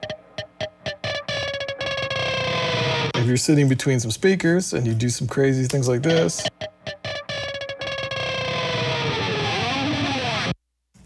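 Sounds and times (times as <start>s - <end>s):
distorted electric guitar sliding note: 0.0s - 3.4s, 6.1s - 10.6s.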